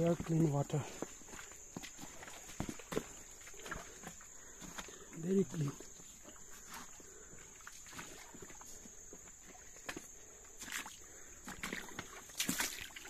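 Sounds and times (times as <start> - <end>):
footsteps crunching on gravel: 0.0 - 7.1
stream trickling over pebbles: 0.0 - 13.0.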